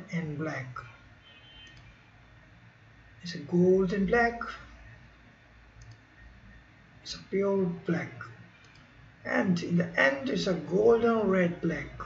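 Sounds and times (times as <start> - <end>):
low steady background hiss: 0.0 - 12.0
faint mouse click: 1.6 - 1.9, 5.8 - 6.1, 8.6 - 8.9.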